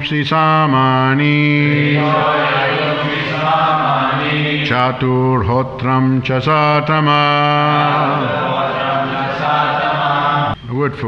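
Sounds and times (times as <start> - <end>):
group of voices chanting: 1.5 - 5.0, 7.0 - 10.6.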